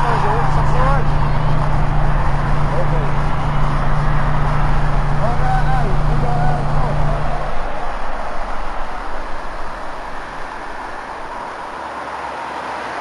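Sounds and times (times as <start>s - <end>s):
indistinct voices: 0.0s - 11.8s
traffic rumble: 0.0s - 13.0s.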